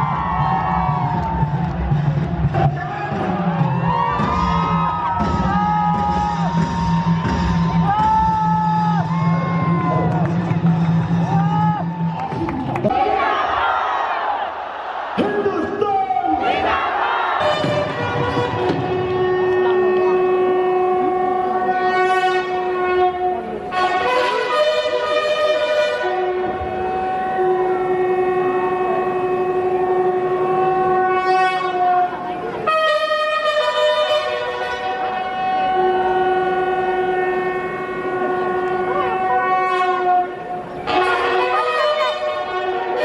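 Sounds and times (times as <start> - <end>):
crowd voices: 0.0 - 43.0
horn-like held note: 17.4 - 43.0.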